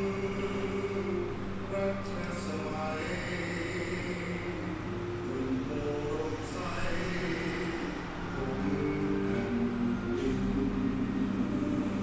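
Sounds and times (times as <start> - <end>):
chant-like droning tones: 0.0 - 12.0.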